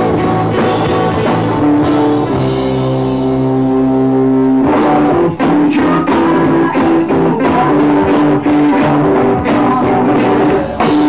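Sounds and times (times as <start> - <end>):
drum kit: 0.0 - 11.0.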